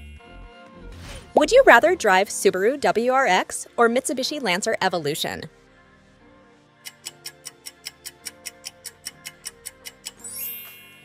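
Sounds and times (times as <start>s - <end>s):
quiet background music: 0.0s - 11.0s
rapid timer ticking: 6.8s - 10.2s.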